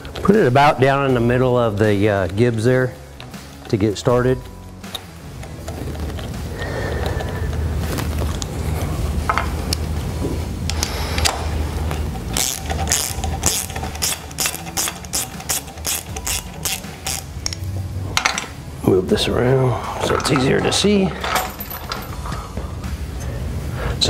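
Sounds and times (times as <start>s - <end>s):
steady low hum: 0.0s - 24.0s
metal ratchet clicks: 12.0s - 18.5s.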